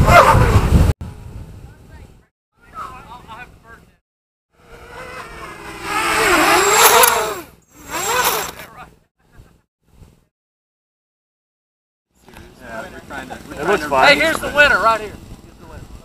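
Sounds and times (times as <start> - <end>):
quadcopter motors whining: 4.6 - 8.9.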